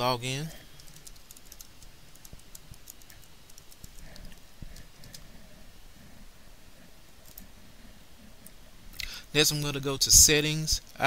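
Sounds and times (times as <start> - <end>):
computer keyboard clicks: 0.8 - 5.2.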